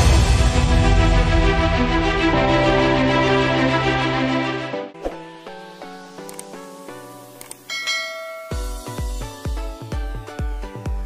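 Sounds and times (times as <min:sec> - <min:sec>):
click sound effect: 0:06.2 - 0:06.6
notification bell chime: 0:07.7 - 0:09.1.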